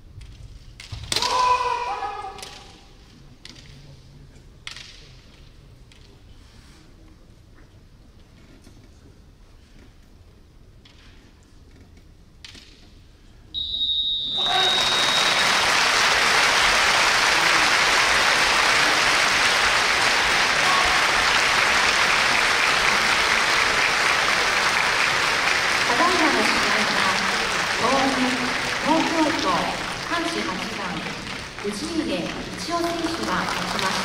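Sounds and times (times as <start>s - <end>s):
buzzer high tone: 13.6s - 15.6s
crowd applause: 14.3s - 34.0s.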